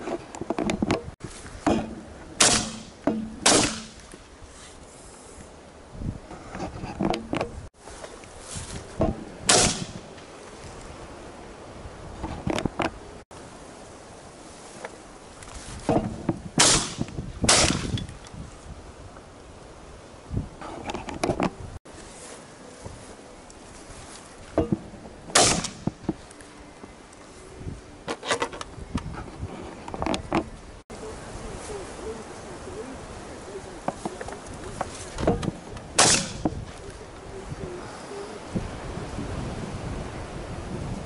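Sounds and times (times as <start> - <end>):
rustling: 0.0 - 5.6, 6.3 - 11.0, 14.4 - 18.7, 20.6 - 30.8, 31.4 - 37.4.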